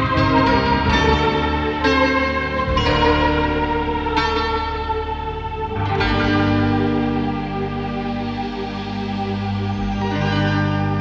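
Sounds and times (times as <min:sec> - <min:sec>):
keyboard string-pad chords: 0:00.0 - 0:11.0.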